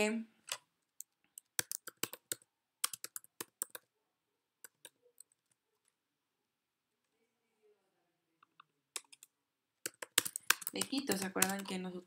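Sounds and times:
typing on computer keyboard: 0:01.0 - 0:03.9, 0:04.6 - 0:05.6, 0:08.4 - 0:12.0.

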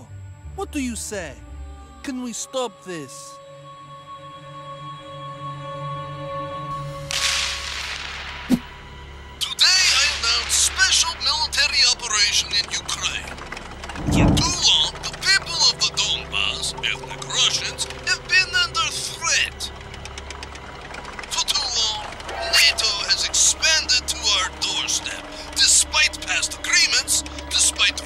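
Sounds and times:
whip-like crack: 0:07.1 - 0:08.7
cartoon tank engine rumble: 0:10.6 - 0:28.0
low steady hum: 0:13.8 - 0:15.9.

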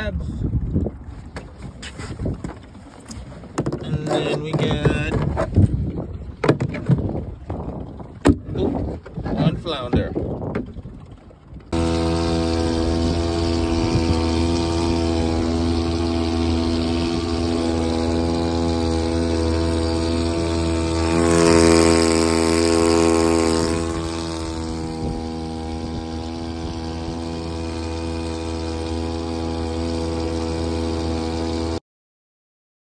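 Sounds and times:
boat motor running: 0:00.0 - 0:31.8
water splashing along hull: 0:00.0 - 0:31.8.

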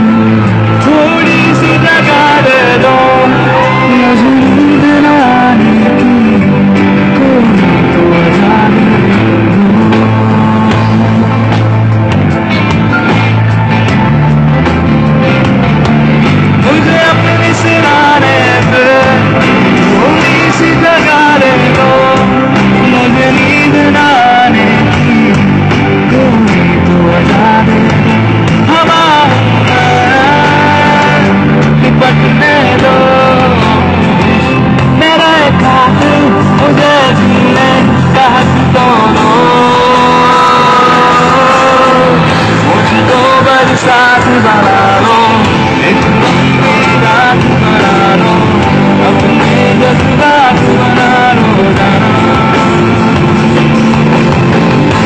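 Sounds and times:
man singing into microphone: 0:00.0 - 0:11.9, 0:16.6 - 0:55.0
band accompaniment: 0:00.0 - 0:55.0
electric guitar: 0:00.0 - 0:55.0.

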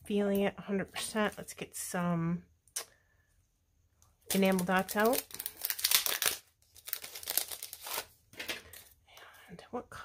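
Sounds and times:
plastic packaging crinkling: 0:04.2 - 0:08.8.

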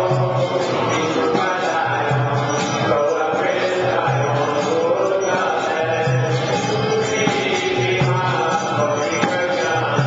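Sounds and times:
group chanting with instruments: 0:00.0 - 0:10.0.

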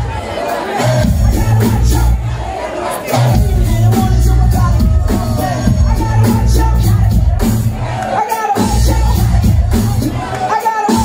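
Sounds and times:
crowd shouting along: 0:00.0 - 0:11.0
hip-hop track with heavy bass: 0:00.0 - 0:11.0.

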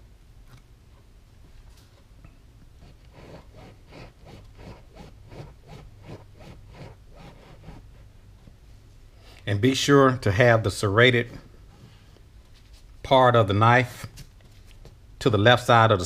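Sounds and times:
knife sawing through vinyl and foam: 0:02.8 - 0:08.0.

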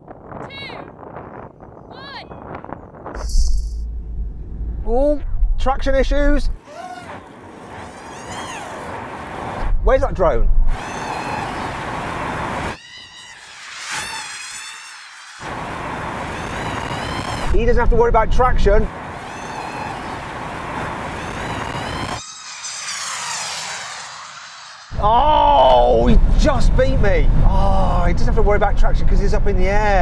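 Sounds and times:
rush of wind: 0:00.0 - 0:30.0
tyre and road noise: 0:00.1 - 0:28.8
electric motors whining: 0:10.8 - 0:17.5, 0:19.3 - 0:25.0.

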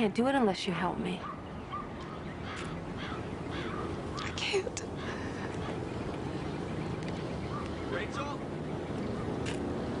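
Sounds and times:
steady outdoor hum: 0:00.0 - 0:10.0
crow cawing faintly: 0:01.2 - 0:06.4.

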